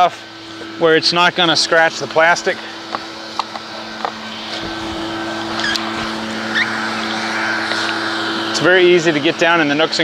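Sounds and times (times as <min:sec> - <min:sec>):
motor humming: 0:00.0 - 0:10.0
short rising chirps: 0:05.5 - 0:08.2.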